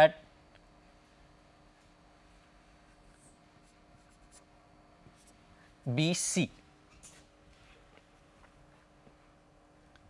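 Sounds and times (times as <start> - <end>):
faint steady hum: 0.0 - 10.0
marker scratching on whiteboard: 3.1 - 4.5.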